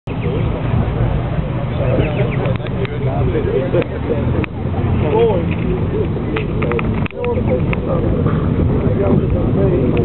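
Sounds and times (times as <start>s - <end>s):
car engine idling: 0.1s - 10.0s
people talking: 0.1s - 10.0s.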